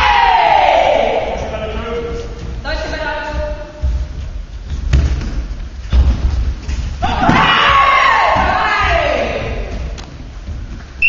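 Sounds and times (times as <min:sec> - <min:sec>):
long falling shout: 0:00.0 - 0:01.2
voices shouting: 0:00.0 - 0:01.6.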